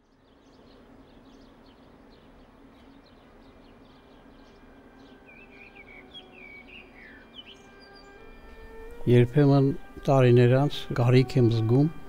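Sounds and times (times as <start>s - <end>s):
low steady hum: 0.0s - 12.0s
bird chirping and warbling: 0.2s - 9.0s.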